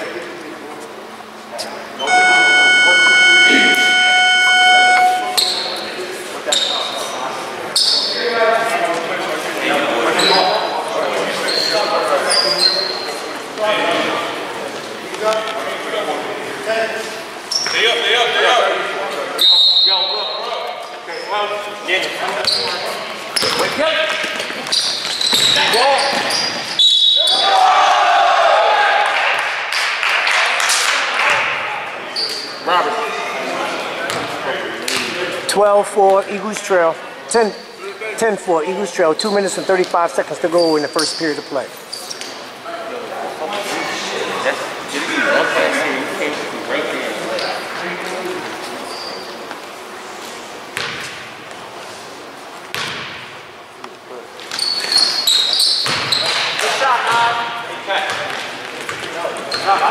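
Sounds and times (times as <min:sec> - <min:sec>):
electronic buzzer tone: 0:02.0 - 0:05.7
people shouting in echoing hall: 0:27.1 - 0:29.4
basketball bouncing: 0:55.8 - 0:56.2.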